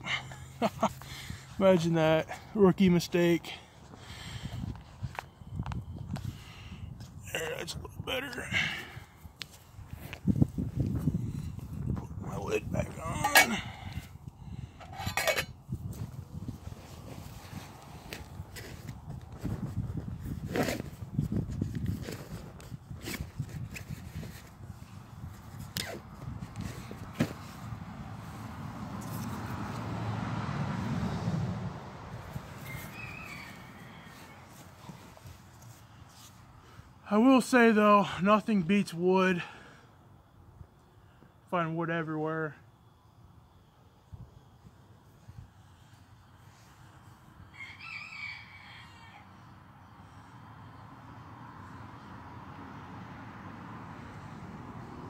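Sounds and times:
wind buffeting microphone: 0:04.0 - 0:27.2.

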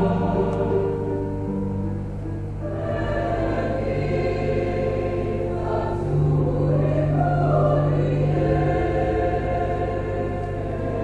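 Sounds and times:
choir singing a hymn: 0:00.0 - 0:01.6, 0:02.6 - 0:11.0.

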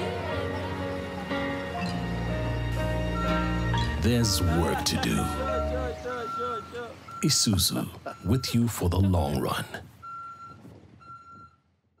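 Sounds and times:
truck reversing alarm beeps: 0:02.9 - 0:12.0.

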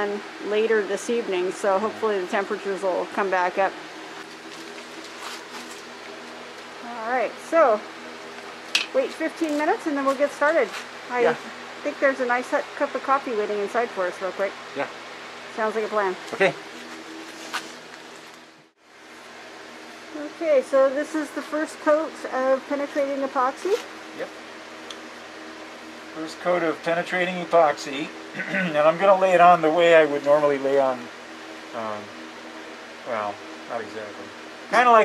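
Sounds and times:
low hum with faint hiss: 0:00.0 - 0:35.0.

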